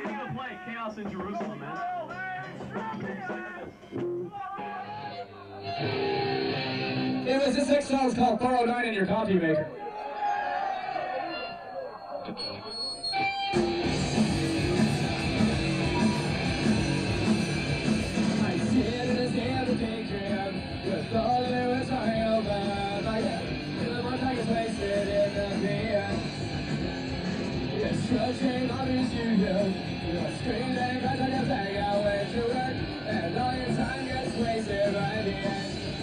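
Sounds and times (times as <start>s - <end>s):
punk rock band playing live: 0.0s - 5.0s, 13.0s - 36.0s.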